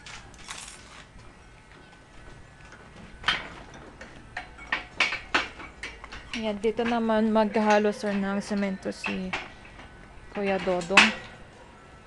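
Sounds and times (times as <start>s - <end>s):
hard objects knocking and clinking: 2.6s - 11.4s.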